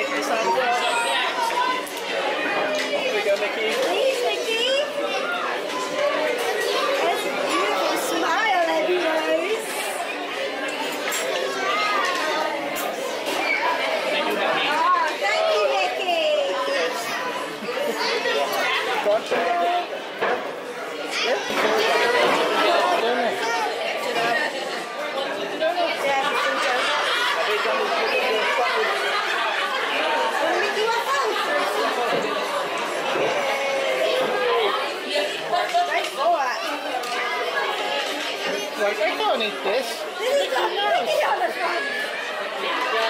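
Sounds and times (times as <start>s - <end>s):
chatter of many diners: 0.0s - 43.0s.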